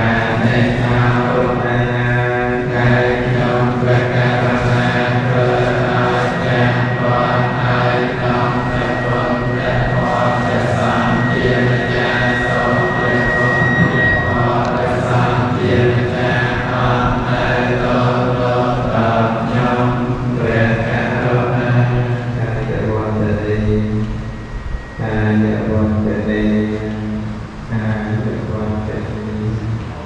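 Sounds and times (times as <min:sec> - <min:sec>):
men chanting in unison: 0:00.0 - 0:24.0.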